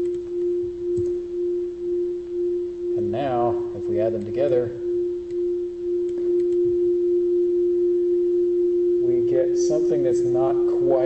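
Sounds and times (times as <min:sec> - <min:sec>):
steady electronic tone: 0:00.0 - 0:11.0
faint clicks: 0:06.0 - 0:06.6.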